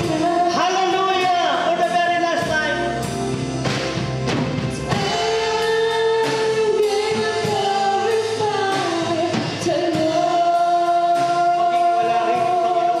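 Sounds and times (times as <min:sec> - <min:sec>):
man singing: 0:00.0 - 0:03.0, 0:04.9 - 0:13.0
band accompaniment: 0:00.0 - 0:13.0
steady drum beat: 0:00.0 - 0:13.0.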